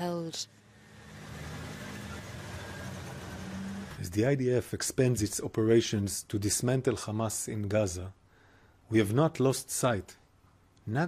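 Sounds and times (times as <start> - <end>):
heavy vehicle engines droning: 0.6 - 4.1.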